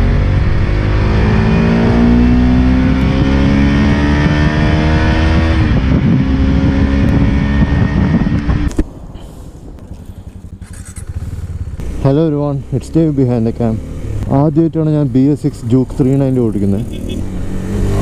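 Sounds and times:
motorcycle engine accelerating: 0.0 - 8.9, 9.8 - 18.0
wind rushing: 0.3 - 11.8.

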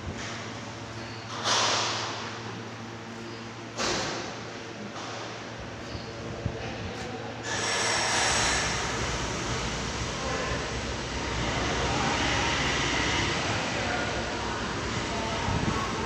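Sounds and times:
machinery hum with hiss: 0.0 - 16.0.

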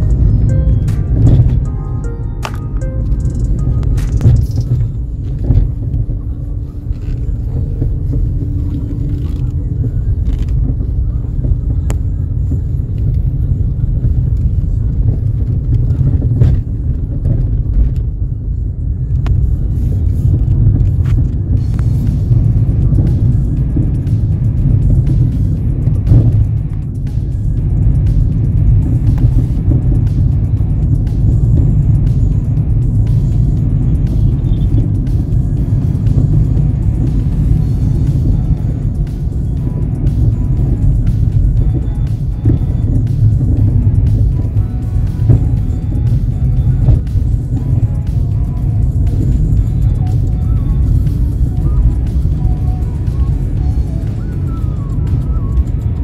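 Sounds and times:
music playing: 0.0 - 56.0
vehicle rumble on road: 0.0 - 56.0.

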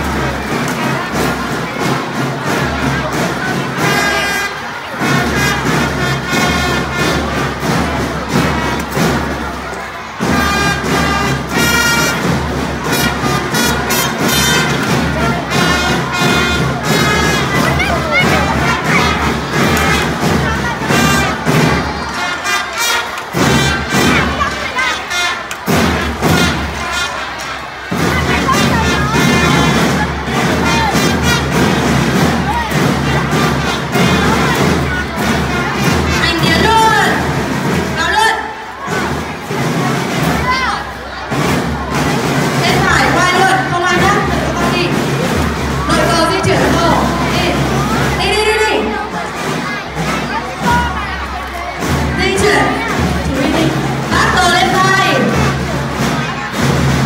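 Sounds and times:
snare drum beat: 0.0 - 57.0
voices: 0.4 - 57.0
trumpets playing: 3.8 - 7.8, 10.1 - 31.9.

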